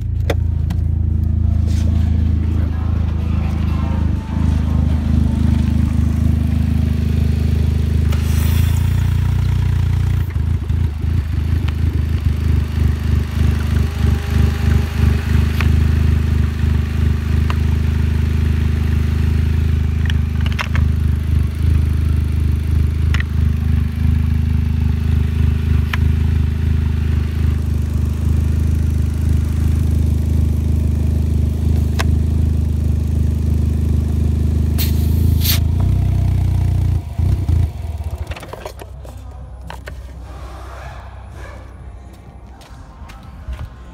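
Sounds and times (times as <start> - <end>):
car engine idling: 0.0 - 43.9.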